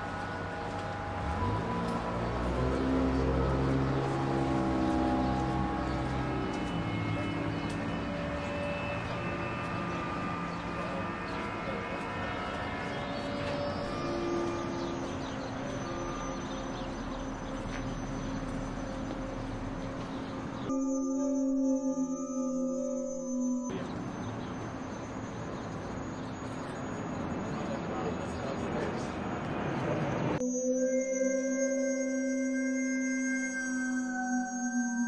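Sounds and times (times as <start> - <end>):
passing traffic: 0.0 - 20.7, 23.7 - 30.4
soft background music: 0.0 - 26.3.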